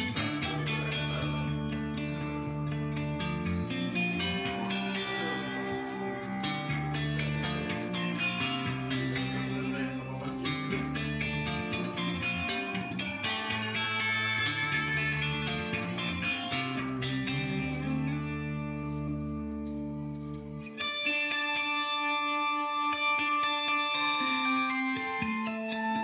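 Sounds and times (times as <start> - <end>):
electric guitar jam: 0.0 - 26.0.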